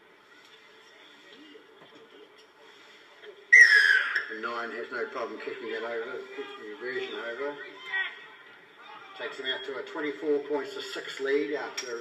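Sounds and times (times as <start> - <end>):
referee's whistle blast: 3.5 - 4.2.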